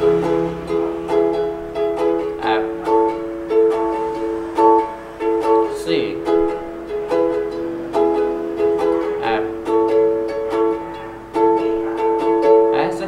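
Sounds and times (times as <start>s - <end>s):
ukulele strumming chords: 0.0s - 13.0s.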